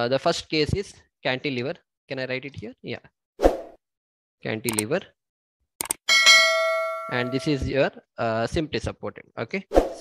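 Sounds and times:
notification bell ding: 6.1s - 7.8s.

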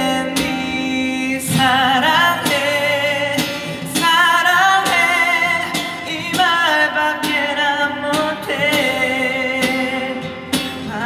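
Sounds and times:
man singing with vibrato: 0.0s - 11.0s
strummed acoustic guitar: 0.0s - 11.0s.

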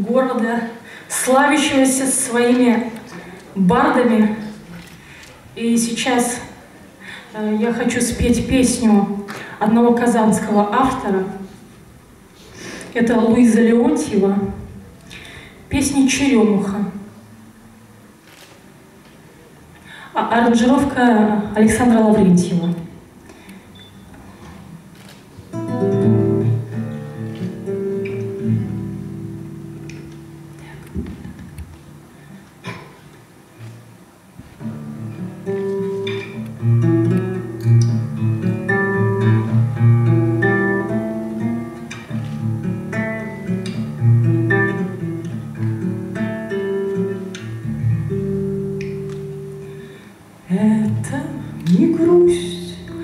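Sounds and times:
classical acoustic guitar playing: 24.0s - 53.0s.

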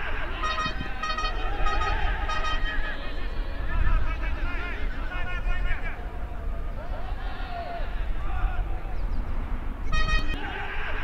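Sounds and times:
horn tooting: 0.3s - 3.4s, 9.9s - 10.5s.

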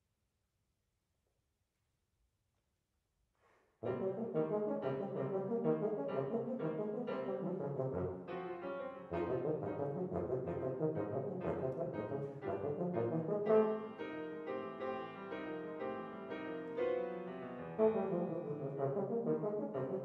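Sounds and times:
grand piano: 3.8s - 20.0s
tuba: 3.8s - 20.0s.

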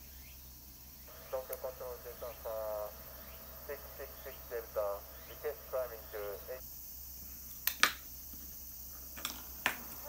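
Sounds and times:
thin voice through small speaker: 1.1s - 6.6s.

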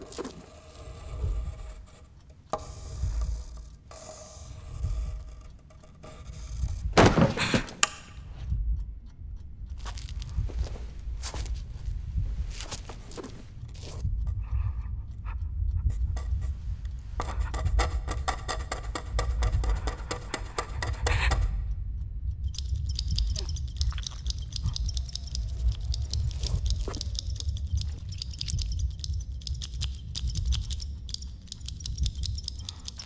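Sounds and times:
pencil scratching on paper: 0.0s - 6.8s, 15.9s - 21.6s
rapid irregular clicking: 0.0s - 33.0s
steady low rumble: 0.9s - 7.1s, 7.9s - 33.0s.

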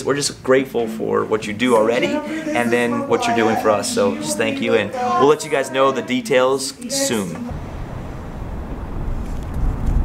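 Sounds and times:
low outdoor rumble: 7.2s - 10.0s.

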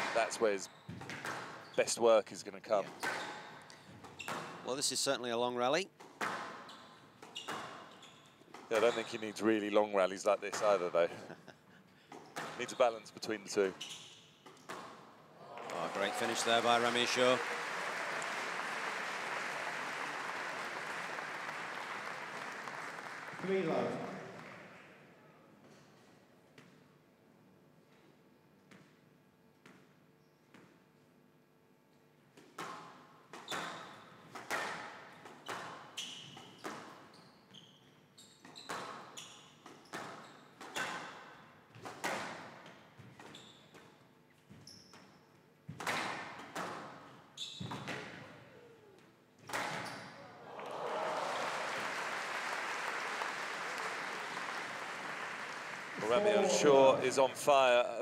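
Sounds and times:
crowd applause: 15.4s - 24.8s, 50.4s - 57.4s.

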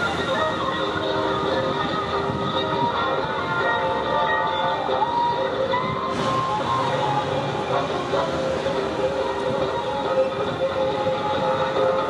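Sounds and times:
loud music from loudspeakers: 0.0s - 12.0s
motorcycle engines: 0.0s - 12.0s.

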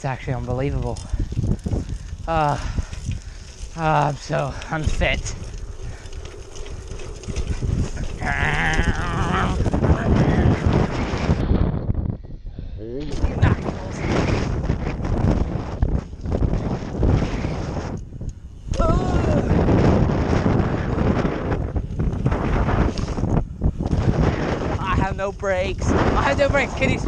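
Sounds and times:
bike tyres rolling on track: 0.0s - 12.2s, 13.1s - 27.0s
wind rushing over microphone: 0.0s - 27.0s.

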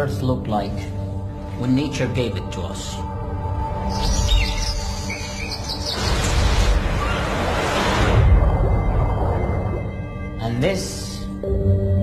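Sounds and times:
low music drone: 0.0s - 12.0s
birds chirping: 3.5s - 7.4s.

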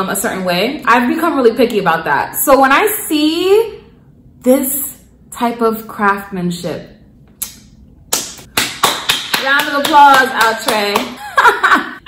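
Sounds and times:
person clapping hands: 7.4s - 11.2s.

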